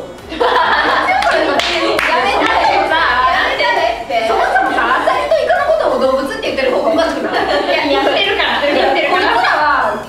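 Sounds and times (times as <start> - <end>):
women laughing: 0.3 - 3.7
hand claps: 1.2 - 2.6.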